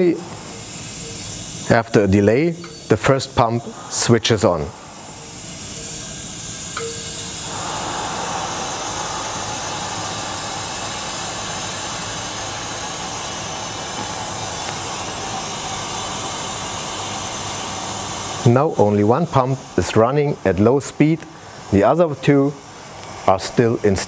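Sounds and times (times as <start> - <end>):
pump running: 0.0 - 24.0
water rushing through pipework: 2.6 - 24.0.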